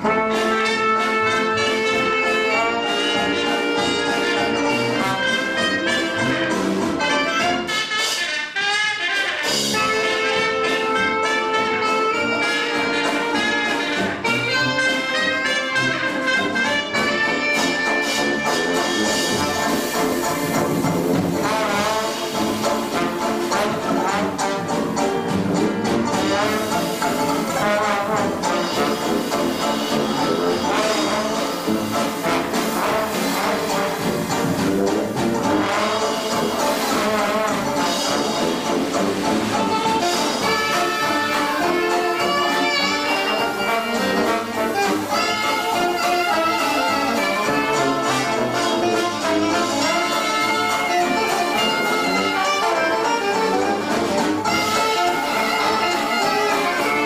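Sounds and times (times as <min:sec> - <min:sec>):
hot jazz band playing: 0:00.0 - 0:57.0
trombone: 0:00.0 - 0:57.0.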